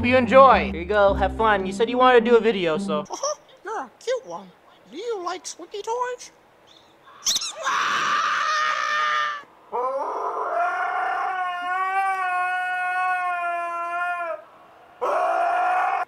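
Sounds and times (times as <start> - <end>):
dog howling: 7.5 - 16.0.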